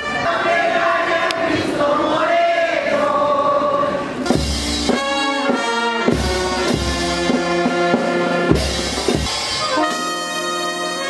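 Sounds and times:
brass band playing held chords: 0.0 - 1.1, 4.1 - 11.0
voices singing: 0.0 - 4.4
deep drum beats: 6.1 - 9.6.

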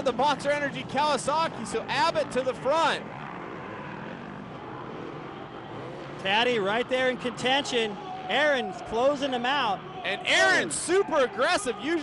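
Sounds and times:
motorcycle engine revving: 0.0 - 8.4
motorcycle engines droning: 0.0 - 12.0.

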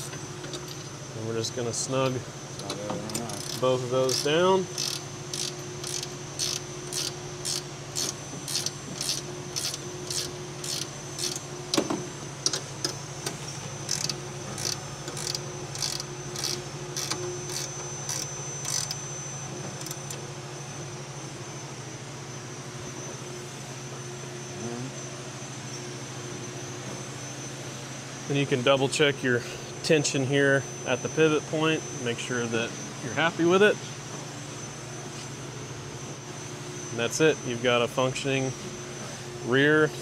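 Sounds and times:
ratcheting wrench clicking: 3.1 - 11.4, 13.9 - 19.0.

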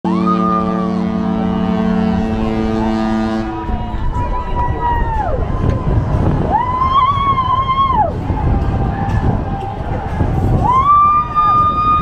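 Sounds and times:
ship horn deep chord: 0.1 - 4.5.

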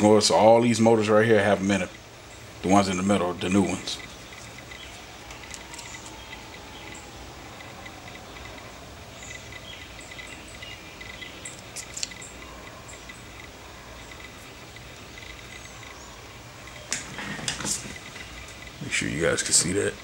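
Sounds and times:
faint room hum: 0.0 - 20.0.

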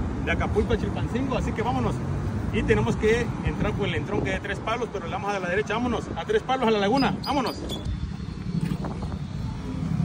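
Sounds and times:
low outdoor roadside rumble: 0.0 - 10.0.

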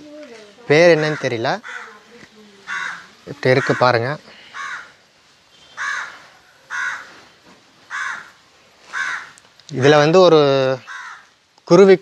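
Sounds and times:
crow cawing: 1.0 - 5.0, 5.6 - 10.0, 10.7 - 11.4.

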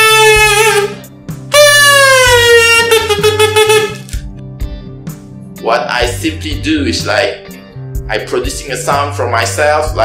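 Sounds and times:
comb and plastic kazoo buzzing: 0.0 - 4.2.

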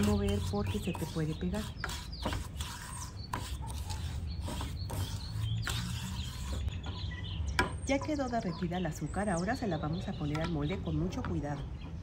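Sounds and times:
spatula scraping sugar in pan: 0.0 - 6.8.

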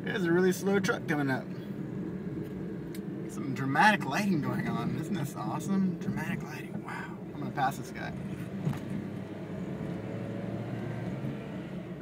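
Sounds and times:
car engine and tyre noise: 0.0 - 12.0.

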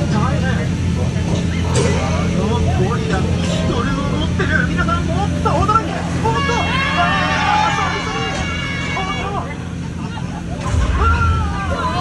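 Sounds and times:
boat motor humming: 0.0 - 12.0.

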